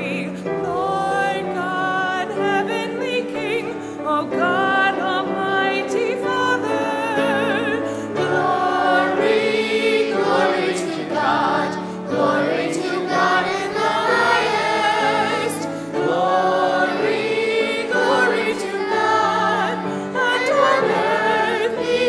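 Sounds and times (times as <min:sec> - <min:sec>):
congregation singing a hymn: 0:00.0 - 0:22.0
piano accompaniment: 0:00.0 - 0:22.0.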